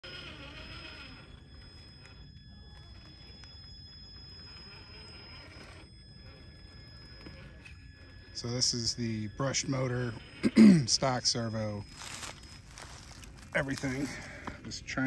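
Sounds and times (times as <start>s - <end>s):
high motor whine: 0.0s - 15.0s.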